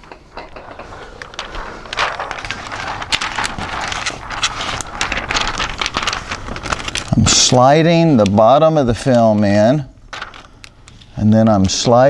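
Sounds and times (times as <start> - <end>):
plastic film rustling and crackling: 0.0 - 12.0.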